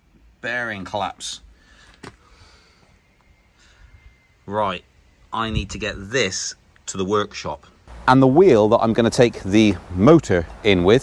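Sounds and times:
low background noise: 0:00.0 - 0:11.0
faint breath drawn in: 0:01.5 - 0:04.4.

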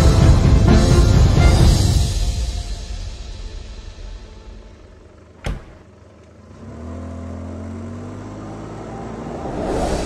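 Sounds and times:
car engine starting and running: 0:00.0 - 0:10.0.

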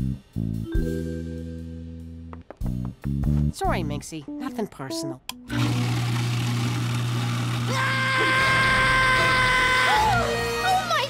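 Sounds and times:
garbage disposal motor humming: 0:05.5 - 0:11.0
man shouting: 0:07.6 - 0:10.4.

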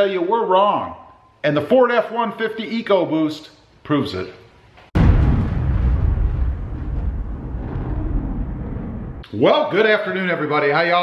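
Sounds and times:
deep steady rumble: 0:05.0 - 0:09.2.

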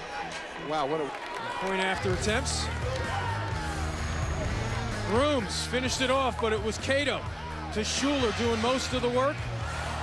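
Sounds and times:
background music with bass line: 0:02.1 - 0:10.0.

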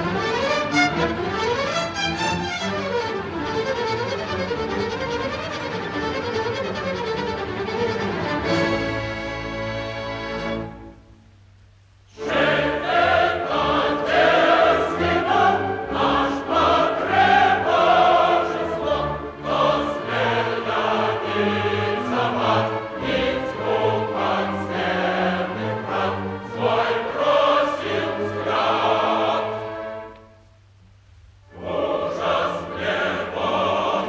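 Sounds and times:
opera chorus with orchestra: 0:00.0 - 0:10.7, 0:12.1 - 0:30.4, 0:31.4 - 0:34.0.

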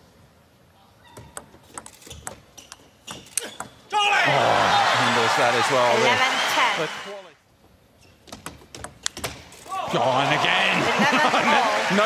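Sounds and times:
table tennis ball clicking: 0:01.2 - 0:03.7
crowd roar: 0:04.1 - 0:07.2, 0:09.7 - 0:12.0.

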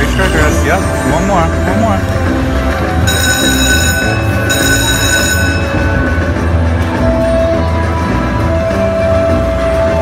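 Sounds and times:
slot machine bonus music: 0:00.0 - 0:07.9
high held ringing chime: 0:03.0 - 0:06.5.

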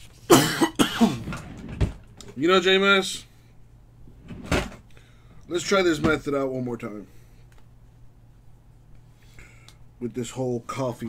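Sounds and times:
man coughing: 0:00.3 - 0:01.3.

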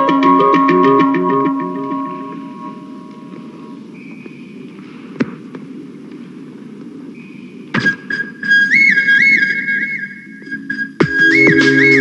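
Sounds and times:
low ambient drone: 0:00.0 - 0:12.0
whistle-like electronic lead: 0:03.9 - 0:04.7, 0:07.1 - 0:12.0.

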